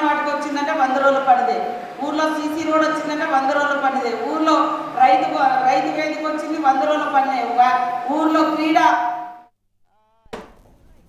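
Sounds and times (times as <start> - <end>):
woman speaking over microphone: 0.0 - 9.3.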